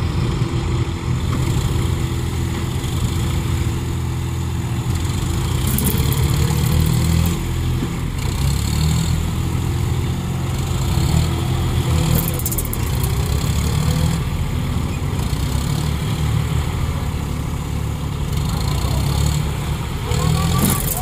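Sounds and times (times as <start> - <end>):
tractor diesel engines running: 0.0 - 21.0.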